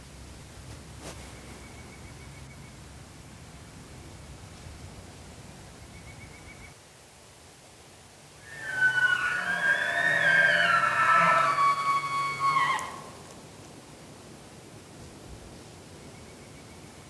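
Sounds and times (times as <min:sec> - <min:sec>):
elk bugling: 0:08.4 - 0:13.2.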